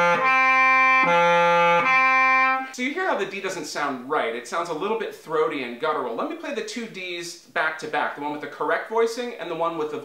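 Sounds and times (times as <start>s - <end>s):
bass clarinet notes: 0.0s - 2.8s.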